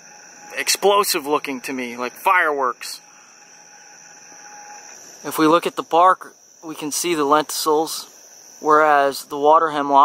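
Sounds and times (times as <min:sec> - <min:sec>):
insect chorus drone: 0:00.0 - 0:10.0.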